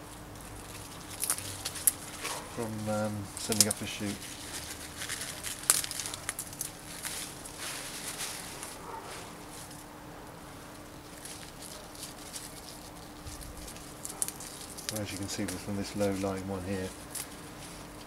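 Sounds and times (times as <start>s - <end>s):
leaves rustling and snapping: 0.0s - 9.9s, 10.7s - 18.0s.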